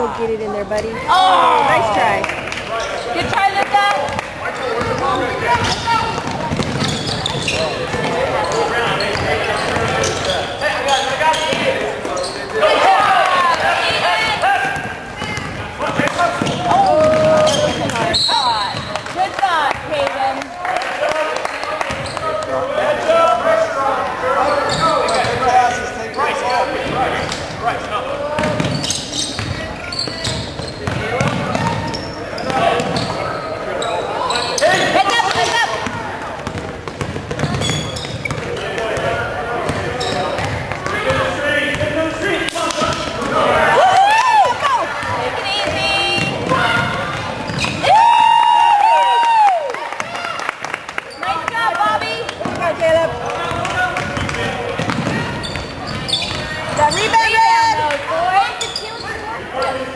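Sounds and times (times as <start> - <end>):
spectators chattering and shouting: 0.0 - 59.9
basketball bouncing on wooden floor: 5.6 - 8.2, 14.7 - 19.1, 30.2 - 33.1, 35.8 - 39.1, 52.4 - 56.6.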